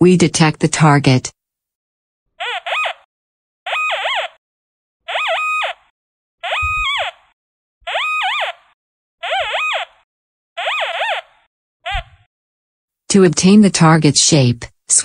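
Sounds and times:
metal detector warbling tones: 0:06.4 - 0:07.1.

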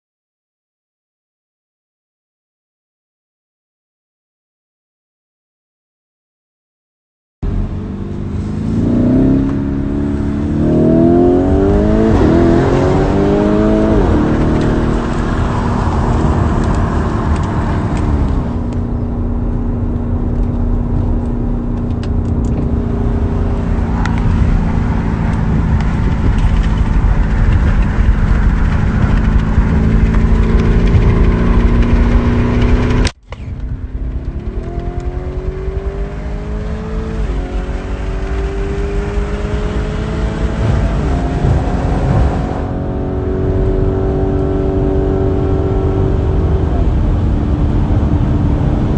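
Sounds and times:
car engine accelerating hard: 0:07.4 - 0:48.9.

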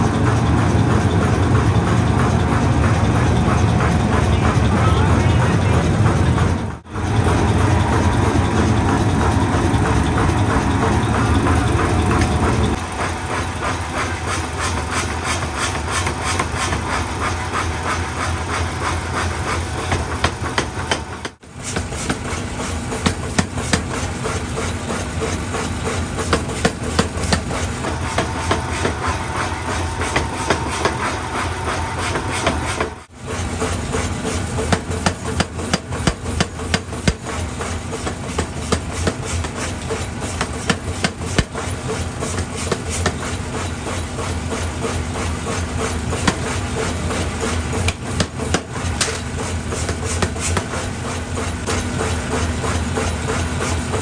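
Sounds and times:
machine drive noise: 0:00.0 - 0:54.0
power hammer pounding steel: 0:00.0 - 0:54.0.

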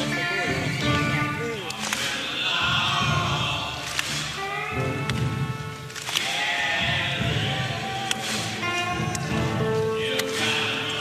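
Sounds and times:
rock band playing live: 0:00.0 - 0:01.6.

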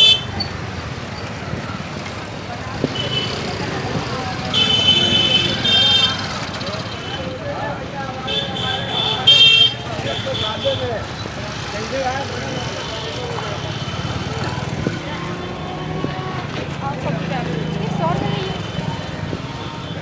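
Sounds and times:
high-pitched vehicle horns: 0:00.0 - 0:00.5, 0:04.5 - 0:07.3, 0:08.3 - 0:10.9
crowd chatter: 0:00.0 - 0:20.0
traffic noise: 0:00.0 - 0:20.0.

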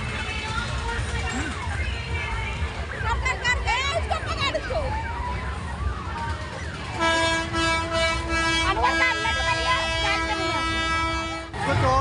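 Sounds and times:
crowd voices: 0:00.0 - 0:12.0
horn holding a steady note: 0:06.8 - 0:11.6.

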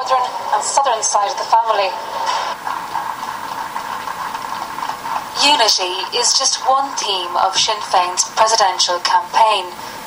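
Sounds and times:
crowd applauding: 0:00.4 - 0:09.0.

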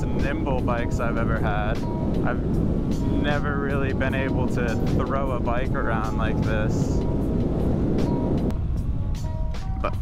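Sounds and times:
wind rush on microphone: 0:00.0 - 0:10.0.

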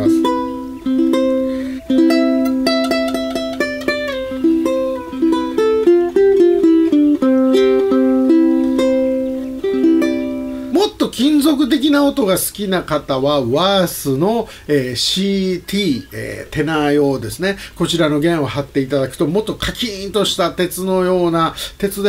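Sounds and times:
ukulele plucked notes: 0:00.0 - 0:10.9.

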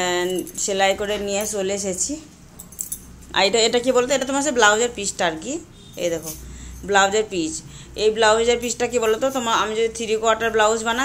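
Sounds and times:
woman speaking: 0:00.0 - 0:02.4, 0:03.3 - 0:11.0
bangles jingling: 0:00.0 - 0:07.2, 0:08.4 - 0:11.0.

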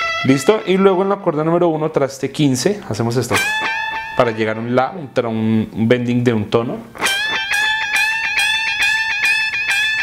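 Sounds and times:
electric guitar bent note picked: 0:02.6 - 0:05.0, 0:06.8 - 0:10.0.

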